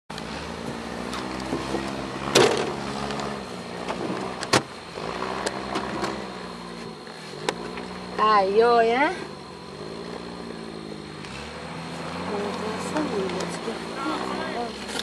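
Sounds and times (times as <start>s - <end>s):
off-road vehicle engine at low revs: 0.1s - 15.0s.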